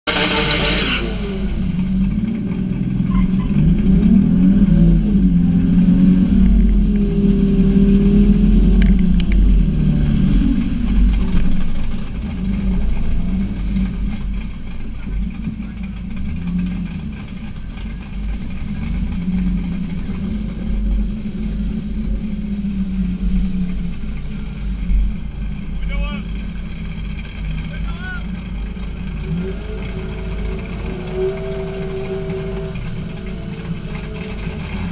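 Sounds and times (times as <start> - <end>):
car engine idling: 0.0 - 34.9.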